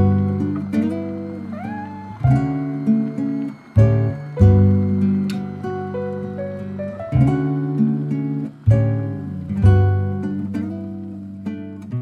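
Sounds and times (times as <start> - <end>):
gliding high guitar note: 0.0 - 11.6
soft acoustic guitar music: 0.0 - 12.0.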